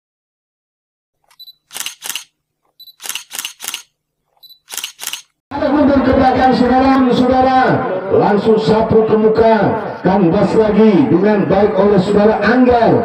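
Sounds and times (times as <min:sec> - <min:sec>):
camera shutter clicks: 0:01.2 - 0:05.4
faint short beep: 0:04.4 - 0:04.7.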